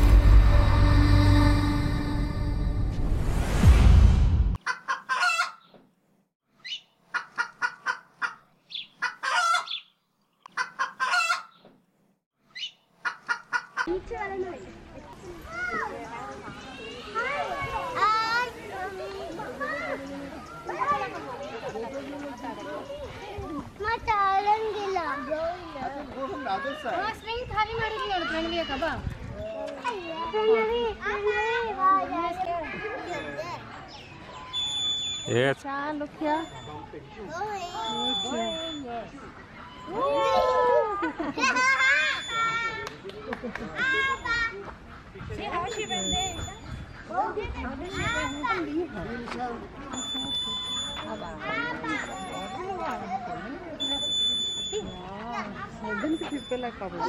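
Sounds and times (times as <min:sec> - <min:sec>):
music sting: 0:00.0 - 0:04.6
outdoor background noise: 0:00.0 - 0:57.0
children calling out and chattering: 0:13.8 - 0:57.0.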